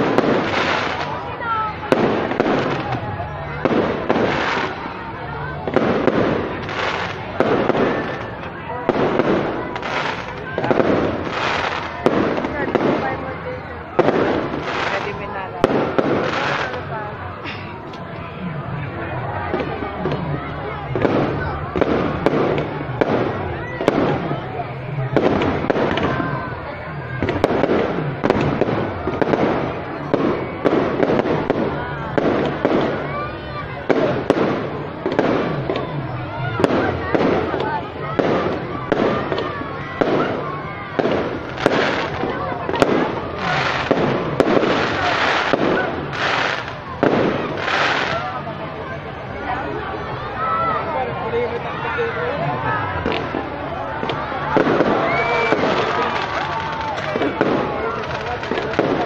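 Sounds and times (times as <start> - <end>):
fireworks bangs: 0.0 - 50.8, 52.4 - 59.0
people talking: 0.0 - 59.0.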